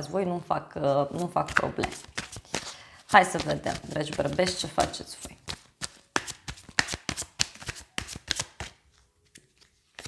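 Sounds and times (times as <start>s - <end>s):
cards being shuffled: 1.1s - 10.0s.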